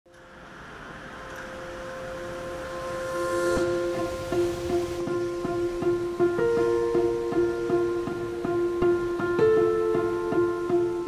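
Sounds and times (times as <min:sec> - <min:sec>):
background music chord: 0:00.1 - 0:11.0.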